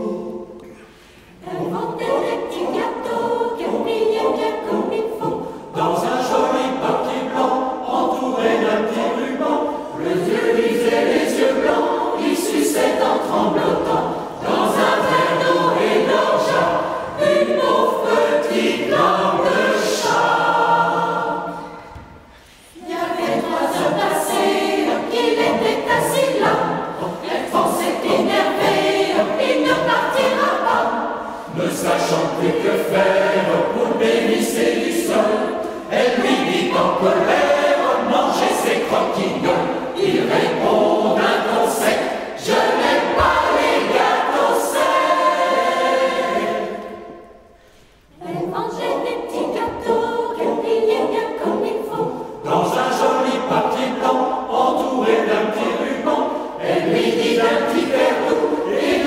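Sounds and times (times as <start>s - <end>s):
mixed choir singing: 0.0s - 59.0s.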